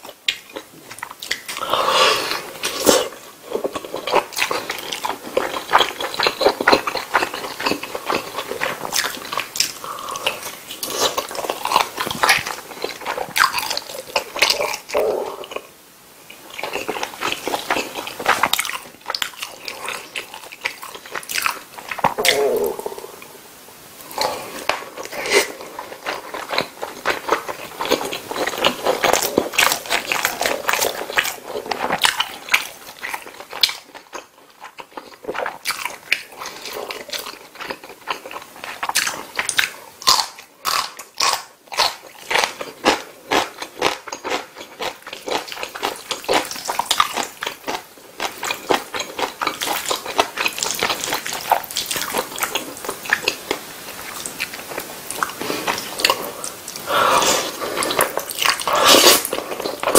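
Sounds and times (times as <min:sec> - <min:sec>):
close chewing with mouth smacks: 0:00.0 - 0:01.6, 0:02.3 - 0:15.7, 0:16.5 - 0:22.4, 0:24.1 - 0:59.9.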